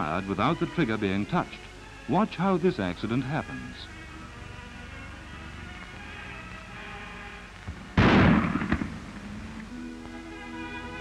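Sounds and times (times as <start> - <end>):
background music: 0.0 - 11.0
loud shotgun blast: 8.0 - 9.2.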